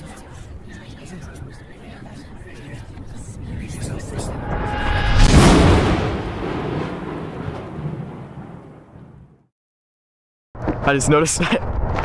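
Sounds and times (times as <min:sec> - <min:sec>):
deep dense noise swell: 0:03.2 - 0:07.9.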